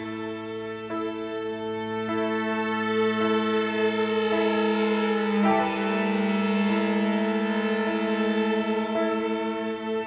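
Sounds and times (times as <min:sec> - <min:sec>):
string quartet slow chords: 0:00.0 - 0:10.0.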